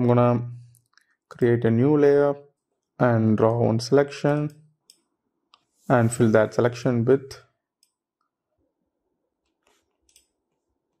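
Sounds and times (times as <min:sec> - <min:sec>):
computer mouse clicks: 0:09.4 - 0:11.0.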